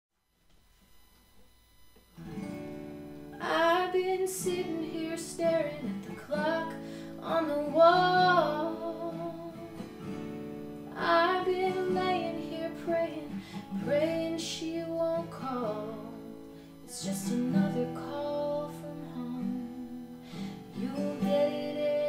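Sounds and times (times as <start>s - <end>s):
acoustic guitar: 0.8s - 22.0s
woman singing: 3.4s - 9.9s, 10.8s - 22.0s.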